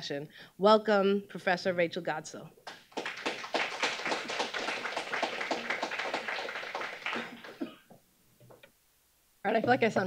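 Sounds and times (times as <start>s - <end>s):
audience applauding: 2.7s - 7.7s.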